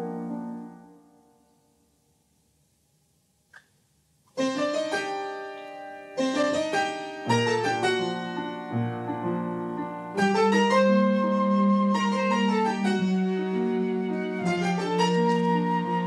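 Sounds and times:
piano playing sustained chords: 0.0 - 1.4, 4.4 - 16.0.

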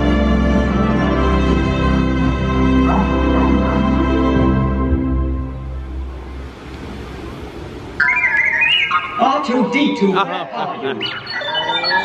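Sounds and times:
electronic sound effect with gliding tones: 8.0 - 12.0.

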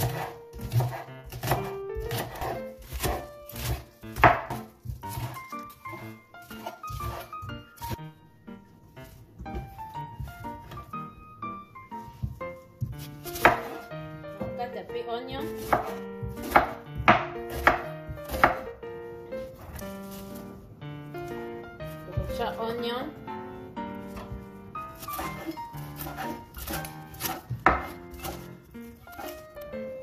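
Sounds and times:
knife chopping on wooden board: 0.0 - 8.0, 12.2 - 13.9, 15.4 - 18.8, 24.1 - 29.5.

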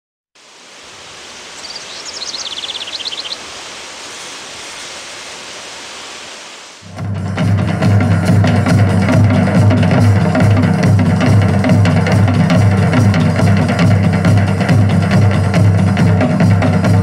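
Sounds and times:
steady hiss: 0.4 - 7.0
high chirps: 1.5 - 5.0
percussion group drumming: 6.8 - 17.0.

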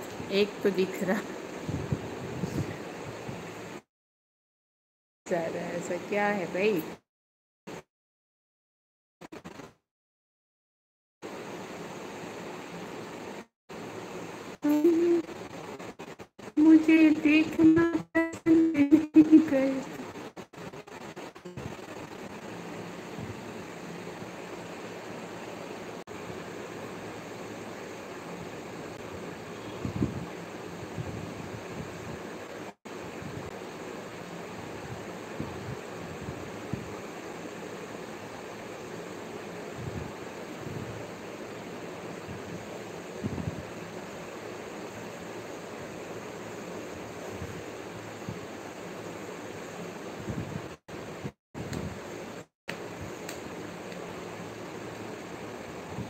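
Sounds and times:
steady background hiss: 11.3 - 56.0.

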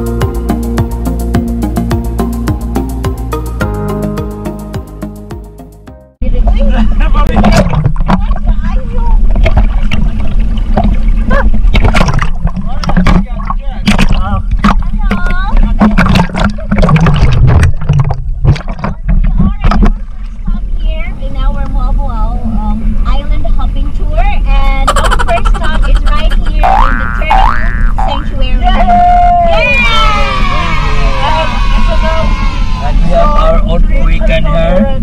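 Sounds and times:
water splashing against camera: 6.2 - 22.0
steady low rumble: 6.2 - 35.0
people calling and laughing: 8.2 - 11.8, 24.4 - 35.0.

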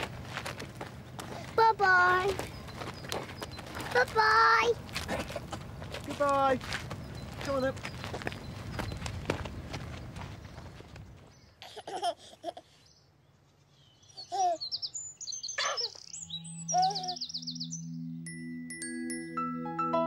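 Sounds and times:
footsteps on gravel: 0.0 - 11.4
birds chirping in trills: 0.8 - 11.6, 12.4 - 19.1
baby giggling and cooing: 11.6 - 12.8, 14.2 - 14.7, 16.7 - 17.2
soft music with low notes: 16.2 - 20.0.

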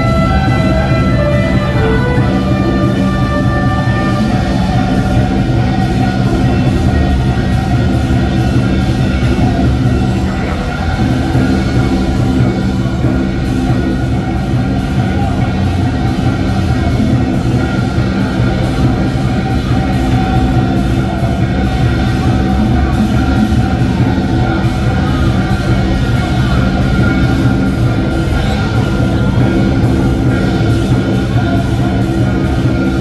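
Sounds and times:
traditional band music with beat: 0.0 - 33.0.

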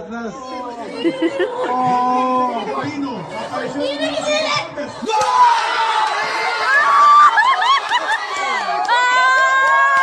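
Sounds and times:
crowd background noise: 0.0 - 10.0
group of voices exclaiming: 0.5 - 10.0.

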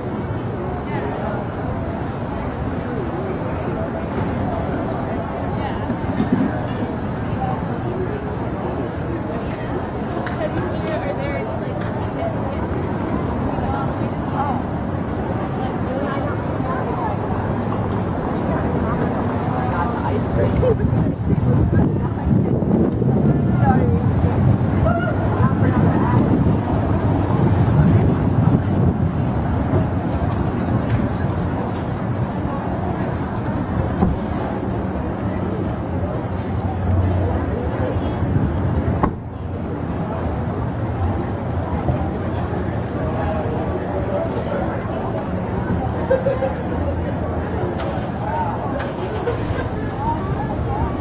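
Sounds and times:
car traffic passing: 0.0 - 51.0
indistinct chatter: 0.0 - 51.0.

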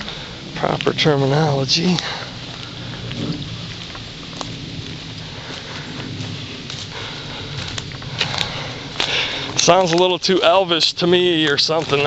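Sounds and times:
footsteps through dry leaves: 0.0 - 12.0
wind rumble on microphone: 0.0 - 12.0.

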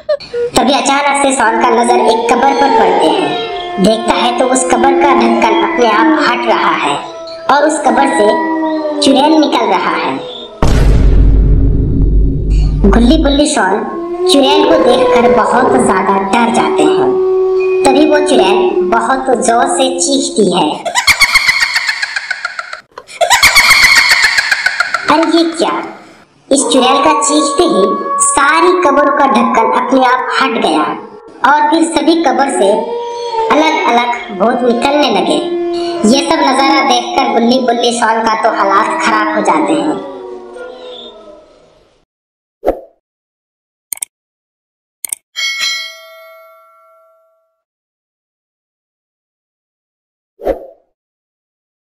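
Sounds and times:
cartoon monster shrieking: 1.5 - 10.6, 13.8 - 19.0, 26.0 - 30.8, 32.4 - 41.1
bright bell ding: 45.4 - 47.6.

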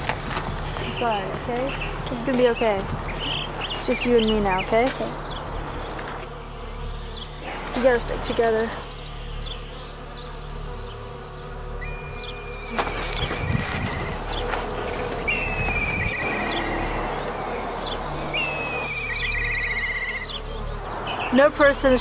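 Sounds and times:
high-pitched insect buzz: 0.0 - 22.0.

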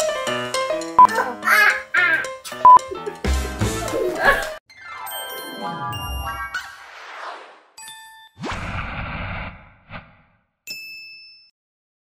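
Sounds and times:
loud noisy hit: 8.4 - 10.3.

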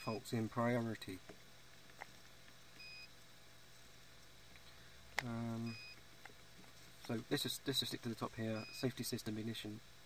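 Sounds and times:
background hum: 0.0 - 10.0.

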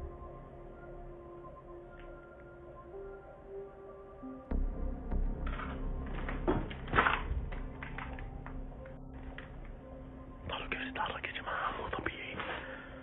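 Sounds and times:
low whispering voices: 10.4 - 13.0.

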